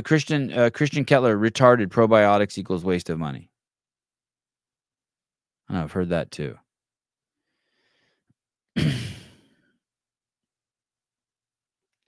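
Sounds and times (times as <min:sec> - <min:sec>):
man clearing throat: 0:08.8 - 0:09.5.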